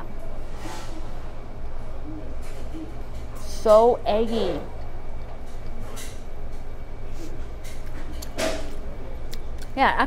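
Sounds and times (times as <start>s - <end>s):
restaurant dining room hum: 0.0s - 10.0s.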